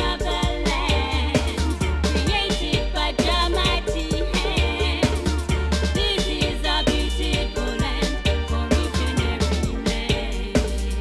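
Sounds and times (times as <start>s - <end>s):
reggae record playing: 0.0s - 11.0s.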